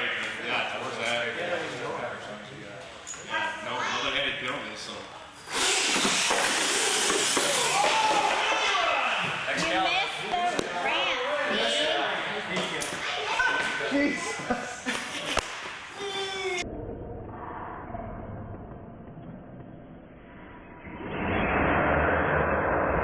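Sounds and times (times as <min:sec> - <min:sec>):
toy trucks racing on concrete: 0:05.4 - 0:08.9.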